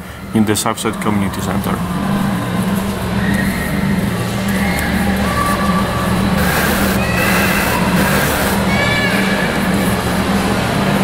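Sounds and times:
low steady drone: 0:00.0 - 0:08.8.

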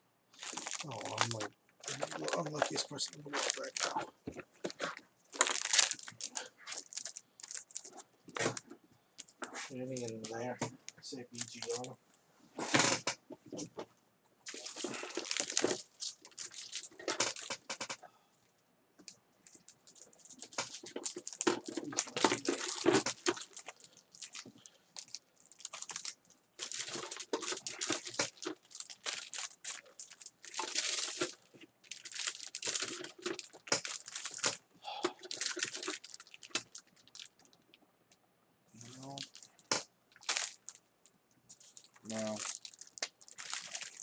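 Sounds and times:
card pack wrappers crinkling: 0:00.4 - 0:08.6, 0:09.2 - 0:12.0, 0:14.5 - 0:18.0, 0:19.5 - 0:37.5, 0:38.8 - 0:40.8, 0:41.5 - 0:44.0.

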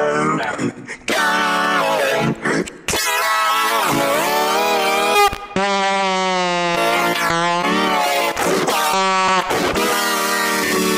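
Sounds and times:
man singing wordlessly: 0:00.0 - 0:05.8, 0:06.8 - 0:10.9.

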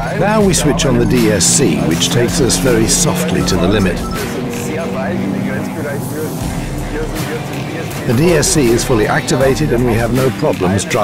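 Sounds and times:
car engine running: 0:00.0 - 0:11.0
road noise: 0:00.0 - 0:11.0.

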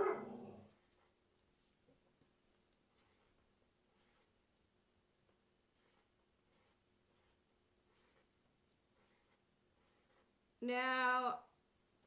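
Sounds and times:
marker pen scratching paper: 0:00.7 - 0:01.2, 0:02.3 - 0:04.4, 0:05.7 - 0:10.4.

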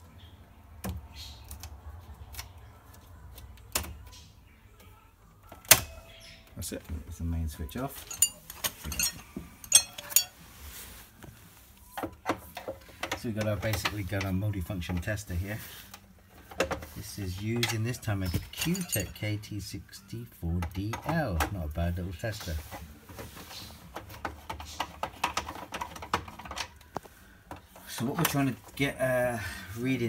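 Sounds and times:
rustling: 0:07.9 - 0:12.0.

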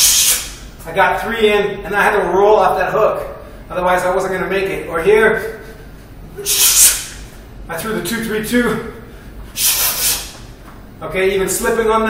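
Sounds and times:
hissing exhale through teeth: 0:06.4 - 0:07.2, 0:09.6 - 0:10.4.

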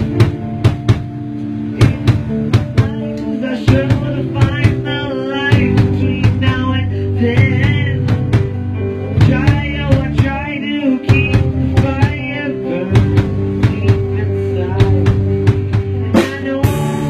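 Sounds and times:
drum kit beat: 0:00.0 - 0:17.0
rock band playing: 0:00.0 - 0:17.0.

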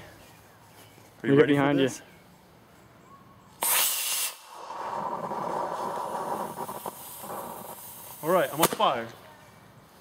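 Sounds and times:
rocket motor whoosh: 0:03.6 - 0:08.3
rocket motor hissing and crackling: 0:03.6 - 0:09.0.

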